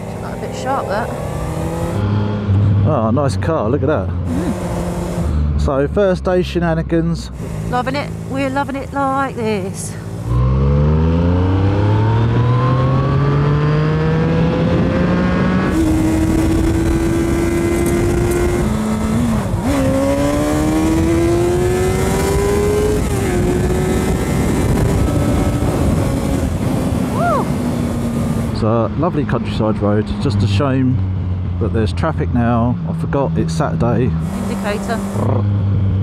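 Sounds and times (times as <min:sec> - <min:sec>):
motorcycle engine accelerating: 0:00.0 - 0:36.0
wind on microphone: 0:14.1 - 0:28.6.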